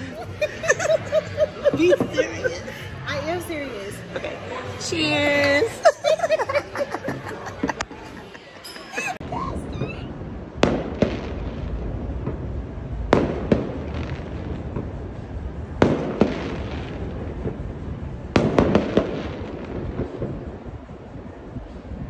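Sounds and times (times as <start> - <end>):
steady low rumble: 0.0 - 8.2, 9.2 - 22.0
fireworks bangs echoing: 0.2 - 3.0, 9.3 - 20.9.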